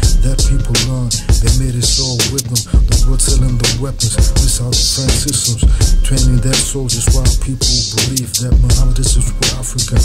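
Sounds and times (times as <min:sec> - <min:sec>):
bass-heavy hip hop beat: 0:00.0 - 0:10.0
person rapping: 0:00.0 - 0:10.0.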